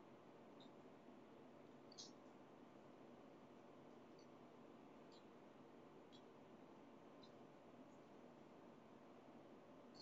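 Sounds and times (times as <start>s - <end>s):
faint room hiss: 0.0s - 10.0s.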